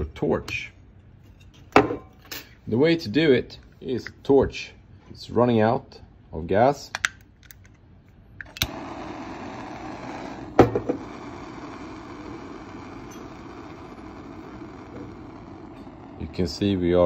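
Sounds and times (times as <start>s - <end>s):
gas flame hissing: 8.4s - 17.0s
torch ignition click: 8.4s - 17.0s.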